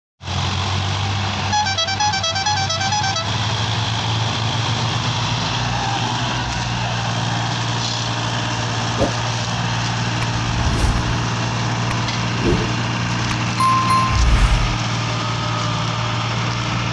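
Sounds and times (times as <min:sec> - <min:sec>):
tractor diesel engines running: 0:00.2 - 0:10.4, 0:14.8 - 0:16.9
musical horn beeping tune: 0:13.6 - 0:14.9.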